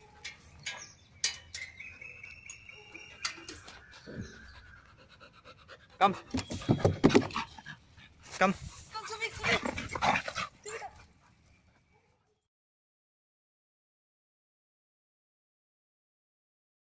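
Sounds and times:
dog panting: 2.8 - 12.4.

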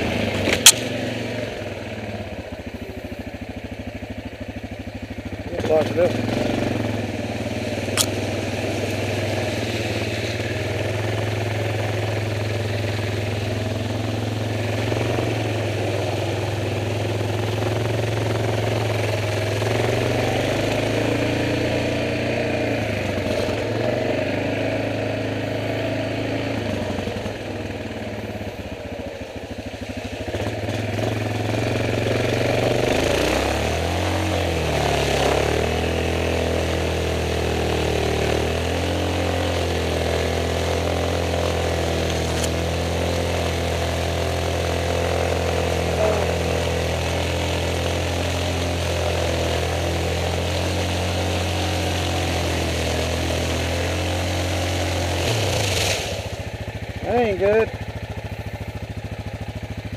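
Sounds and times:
atv engine running: 0.0 - 59.9.

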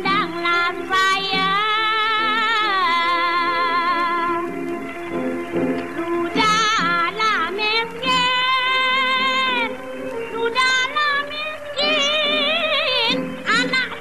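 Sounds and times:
woman singing with vibrato: 0.0 - 4.8, 5.8 - 14.0
instrumental accompaniment: 0.0 - 14.0.

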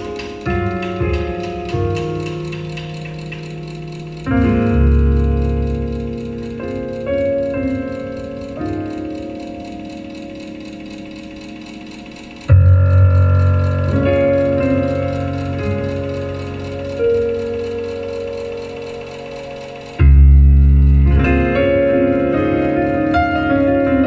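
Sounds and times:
heavy low piano chords: 0.0 - 24.0
piano chords ringing: 0.0 - 24.0.

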